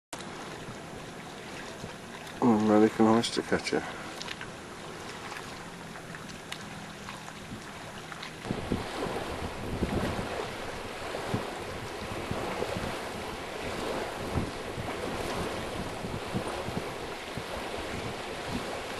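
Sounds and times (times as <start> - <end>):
surf: 0.2 - 18.9
wind buffeting microphone: 7.4 - 18.9.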